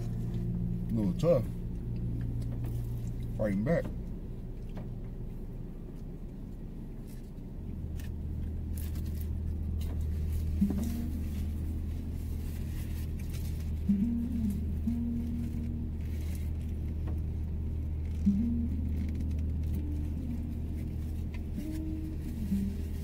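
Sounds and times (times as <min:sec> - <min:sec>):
car engine idling drone: 0:00.0 - 0:23.0
faint crinkles and clicks: 0:05.9 - 0:23.0.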